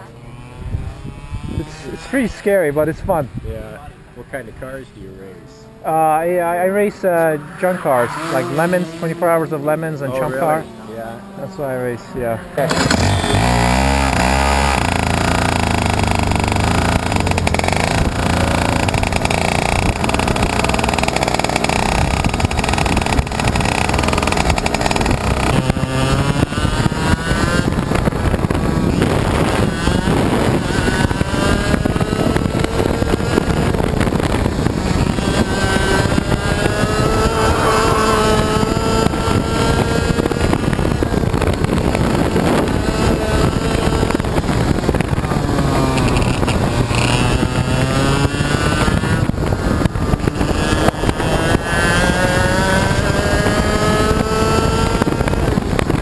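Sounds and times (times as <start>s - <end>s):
kart engine revving: 0.0s - 56.0s.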